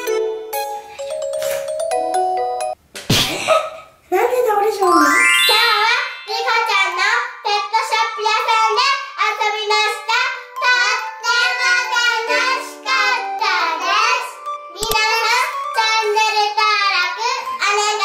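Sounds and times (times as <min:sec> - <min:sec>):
light background music: 0:09.7 - 0:18.0
children singing: 0:10.6 - 0:16.4.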